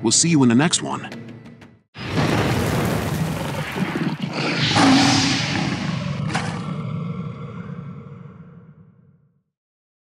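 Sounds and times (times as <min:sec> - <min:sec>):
big cat roar: 0:03.7 - 0:09.1.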